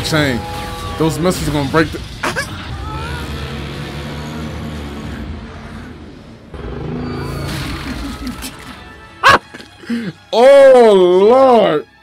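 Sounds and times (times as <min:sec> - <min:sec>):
giant monster roar: 0:00.0 - 0:08.5
dramatic score music: 0:00.0 - 0:12.0.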